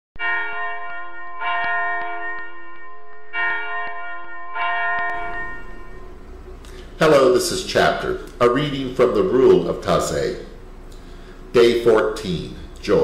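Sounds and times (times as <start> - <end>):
bell ringing: 0.2 - 6.4.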